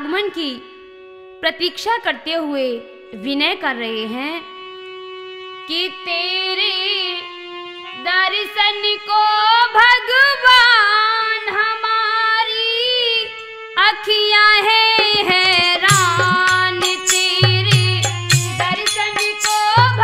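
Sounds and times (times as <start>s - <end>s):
harmonium holding a note: 0.0s - 20.0s
woman singing folk verse: 8.0s - 20.0s.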